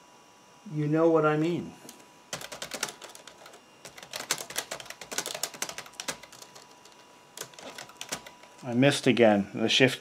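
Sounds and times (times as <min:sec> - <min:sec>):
laptop keyboard typing: 0:01.9 - 0:08.9.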